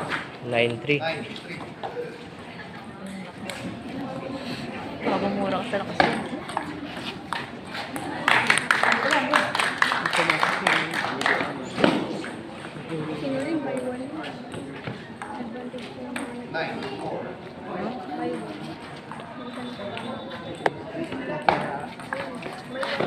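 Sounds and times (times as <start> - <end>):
background chatter of onlookers: 0.0 - 23.0.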